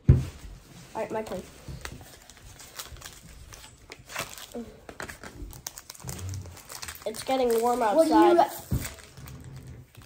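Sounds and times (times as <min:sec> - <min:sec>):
foil wrapper crinkling and tearing: 0:01.8 - 0:10.0.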